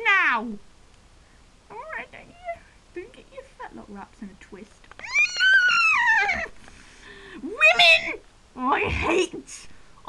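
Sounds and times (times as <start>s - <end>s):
child squealing cry: 5.0s - 6.6s.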